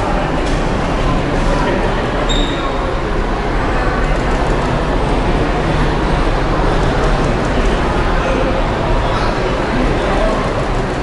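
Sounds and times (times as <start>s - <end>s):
busy hall rumble and hiss: 0.0s - 11.0s.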